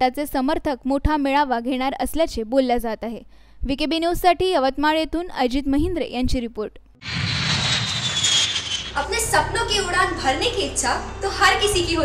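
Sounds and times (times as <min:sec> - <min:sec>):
jet airliner engines: 0:07.0 - 0:09.3.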